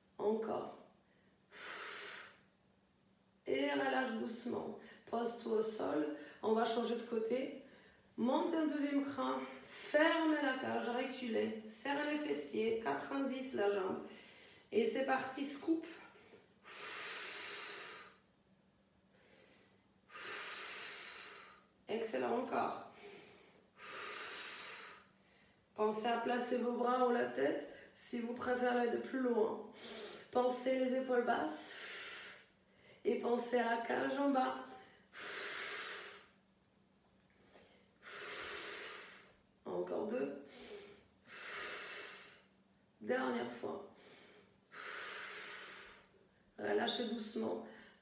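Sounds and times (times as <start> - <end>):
woman exhaling forcefully: 1.5 - 2.4, 16.6 - 18.2, 20.1 - 21.6, 23.0 - 25.1, 35.1 - 36.4, 38.0 - 39.3, 40.5 - 42.4, 44.0 - 46.1.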